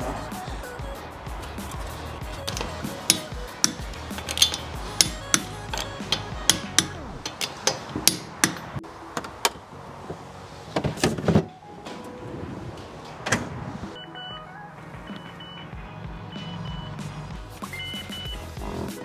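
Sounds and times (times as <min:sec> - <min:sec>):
wheel brace clicking: 0:01.6 - 0:09.6
metal knocks: 0:02.5 - 0:08.8.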